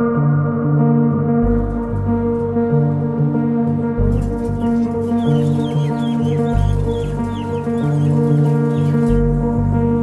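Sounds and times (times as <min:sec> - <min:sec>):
background music with low notes: 0:00.0 - 0:10.0
chickens squawking: 0:04.1 - 0:09.3.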